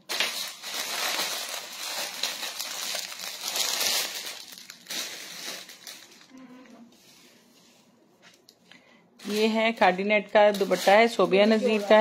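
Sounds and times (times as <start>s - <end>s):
plastic bags crinkling: 0.0s - 6.4s, 9.2s - 12.0s.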